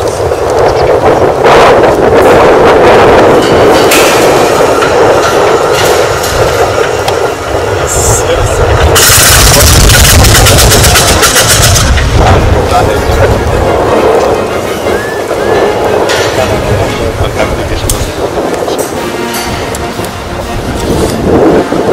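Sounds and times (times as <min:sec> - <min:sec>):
aircraft engine running: 0:00.0 - 0:21.9.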